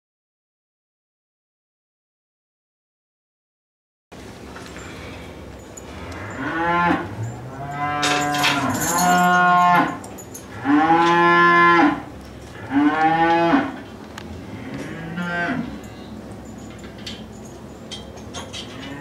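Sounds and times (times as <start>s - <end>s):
cows mooing: 5.8s - 16.4s, 18.5s - 19.0s.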